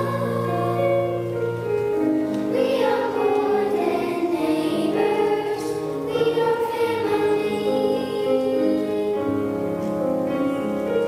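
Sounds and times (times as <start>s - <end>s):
children's choir singing: 0.0s - 9.8s
electric keyboard: 0.0s - 11.0s.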